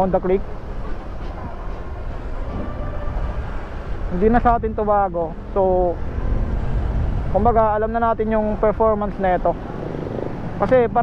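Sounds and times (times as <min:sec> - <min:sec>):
wind and road noise: 0:00.0 - 0:11.0
scooter engine low rumble: 0:00.5 - 0:11.0.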